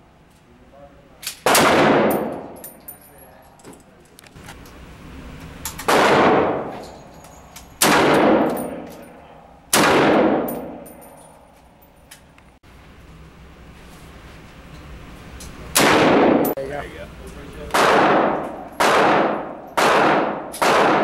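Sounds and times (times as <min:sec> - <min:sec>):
rifle shots echoing indoors: 0:01.2 - 0:02.6, 0:05.8 - 0:07.0, 0:07.8 - 0:11.1, 0:15.7 - 0:16.6, 0:17.7 - 0:21.0.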